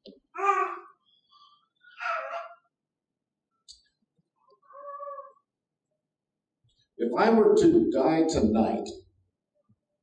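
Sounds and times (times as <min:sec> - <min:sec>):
child whimpering: 0:00.4 - 0:00.9, 0:02.0 - 0:02.6.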